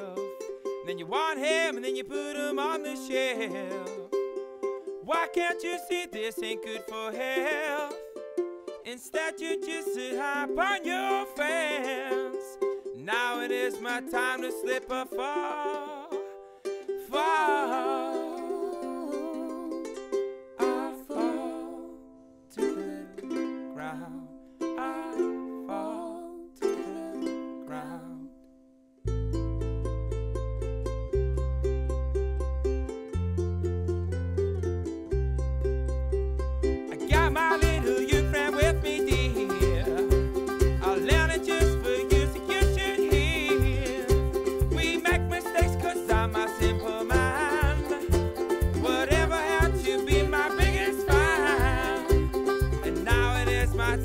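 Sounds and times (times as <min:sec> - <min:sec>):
plucked-string notes: 0:00.0 - 0:54.0
long held bass notes: 0:29.1 - 0:54.0
folk band playing: 0:31.2 - 0:54.0.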